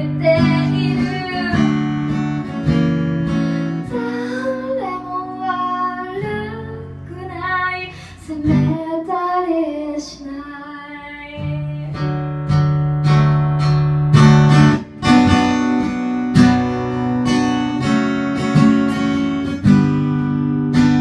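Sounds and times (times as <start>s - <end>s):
woman singing: 0.0s - 2.2s, 3.7s - 12.2s
strummed acoustic guitar: 0.0s - 10.2s, 11.1s - 21.0s.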